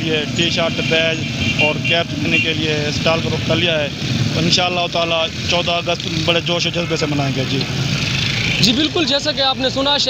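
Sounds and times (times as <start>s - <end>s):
man talking into a microphone: 0.0s - 7.8s, 8.5s - 10.0s
street traffic rumble: 0.0s - 10.0s.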